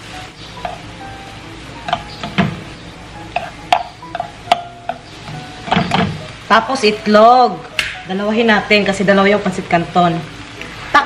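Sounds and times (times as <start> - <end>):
bouncy background music: 0.0 - 11.0.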